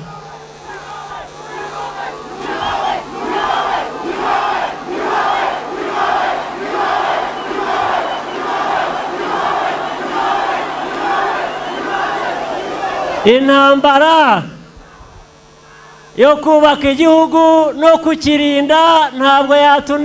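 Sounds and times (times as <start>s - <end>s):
crowd chanting: 0.0s - 13.4s
steady low hum: 0.0s - 13.9s.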